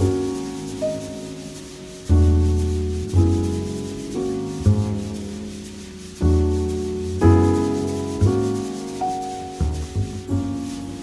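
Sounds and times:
drum brushes swishing on snare: 0.0 - 11.0
jazz piano trio ballad: 0.0 - 11.0.

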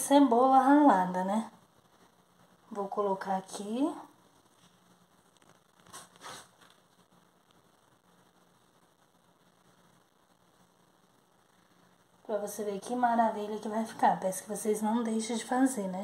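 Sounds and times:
faint hiss: 0.0 - 16.0.

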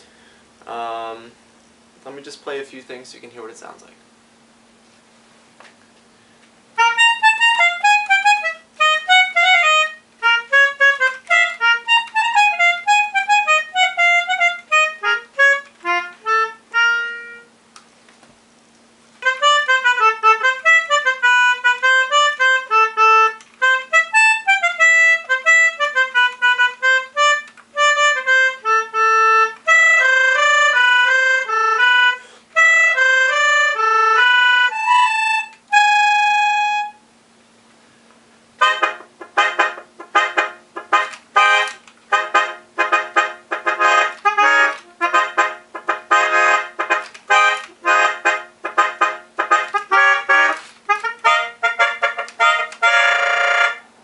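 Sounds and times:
melodica playing: 6.8 - 17.6, 19.2 - 37.1, 38.6 - 53.9.

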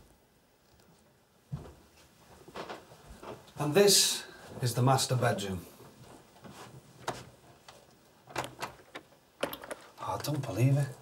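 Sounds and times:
door handle clicking: 8.3 - 9.9.

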